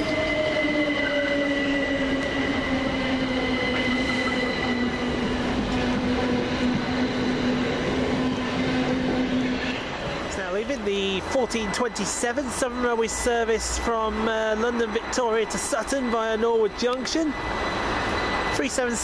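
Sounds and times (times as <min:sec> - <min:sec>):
electric train whine: 0:00.0 - 0:19.0
train wheels rumbling on rails: 0:00.0 - 0:19.0.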